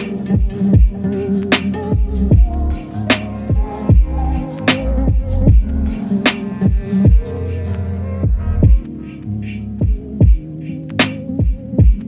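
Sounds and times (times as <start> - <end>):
lo-fi hip hop beat: 0.0 - 12.0
deep kick drums: 0.4 - 1.0, 1.9 - 2.8, 3.5 - 4.2, 5.0 - 6.0, 6.7 - 7.3, 8.2 - 8.9, 9.8 - 10.4, 11.4 - 12.0.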